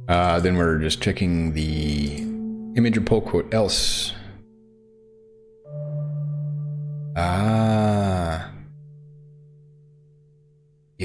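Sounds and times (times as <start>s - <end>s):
ambient music held tone: 0.0s - 11.0s
man's drawn-out vocal sound: 7.2s - 8.7s.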